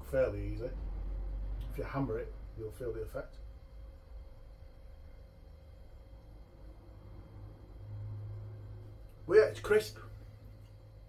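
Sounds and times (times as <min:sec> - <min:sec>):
faint steady tone: 0:00.0 - 0:11.0
low steady hum: 0:00.0 - 0:11.0.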